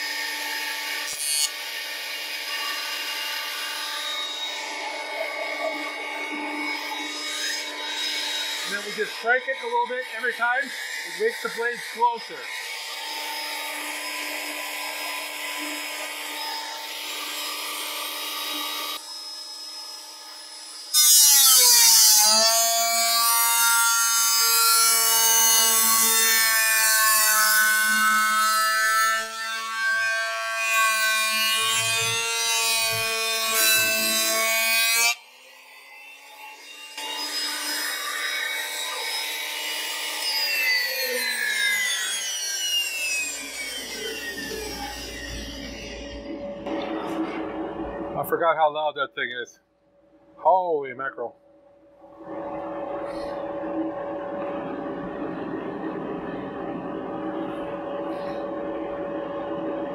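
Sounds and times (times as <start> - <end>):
planer motor whine: 38.4 - 48.2.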